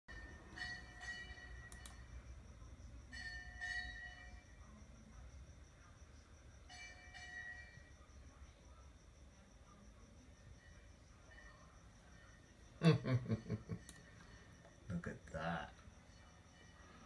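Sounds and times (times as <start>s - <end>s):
bell-like chimes: 0.1s - 2.2s, 3.1s - 4.6s, 6.7s - 8.0s
faint high whine: 0.1s - 17.0s.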